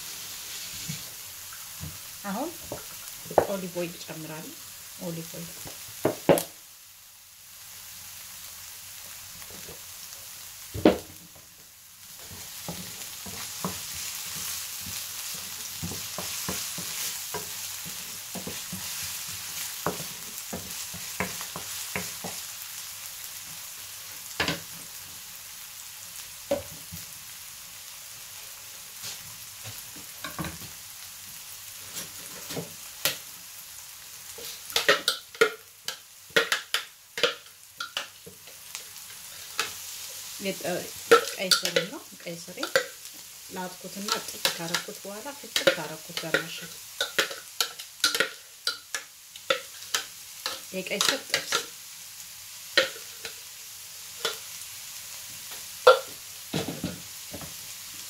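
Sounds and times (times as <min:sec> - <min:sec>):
onions sizzling in oil: 0:00.0 - 0:58.0.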